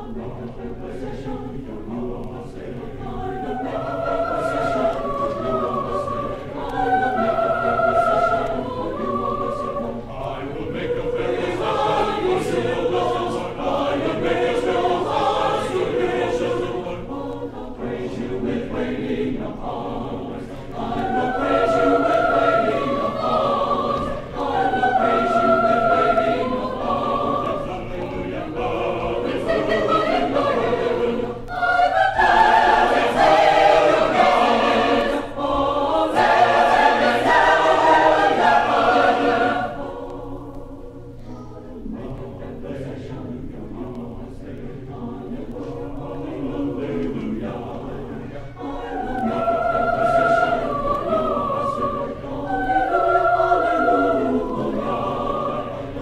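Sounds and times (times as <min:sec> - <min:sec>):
choir singing: 0:00.0 - 0:56.0.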